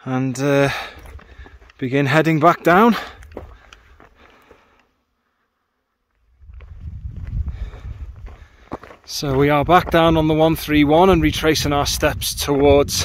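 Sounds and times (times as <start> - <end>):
footsteps on rocky trail: 0.3 - 4.9, 6.1 - 11.5
wind rumbling on microphone: 6.3 - 13.0.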